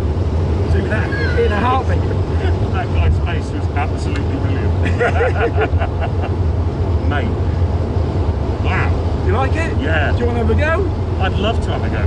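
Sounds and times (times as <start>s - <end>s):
car interior rumble: 0.0s - 12.0s
man laughing: 1.9s - 2.9s, 4.7s - 6.5s.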